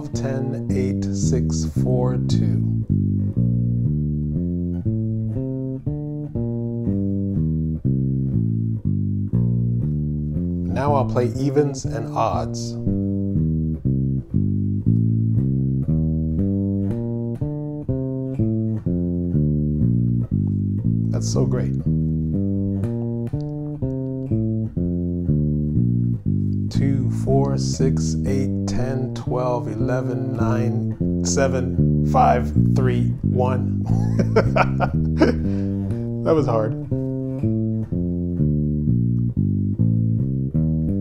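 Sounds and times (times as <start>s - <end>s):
electric bass fingerstyle notes: 0.0s - 41.0s
man laughing: 33.8s - 35.7s.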